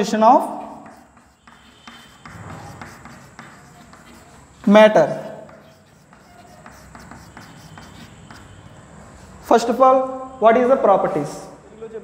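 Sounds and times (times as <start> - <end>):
chalk scratching on blackboard: 0.3 - 9.8.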